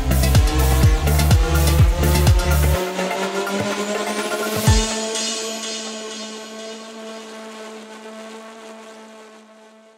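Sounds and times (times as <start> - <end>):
low synthesizer drone: 0.0 - 9.9.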